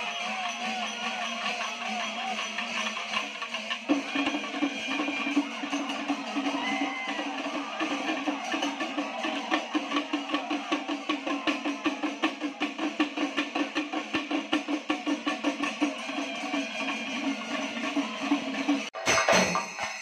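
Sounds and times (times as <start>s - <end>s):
drum ensemble playing fast beat: 0.0s - 20.0s
background music: 5.5s - 10.9s.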